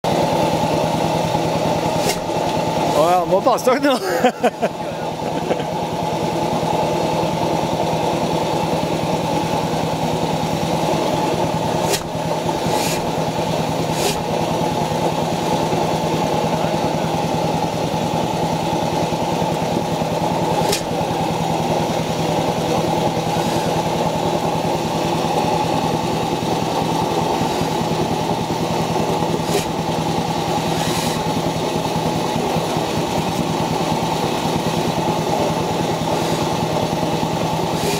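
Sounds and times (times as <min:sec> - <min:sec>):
stationary engine running: 0:00.0 - 0:37.9.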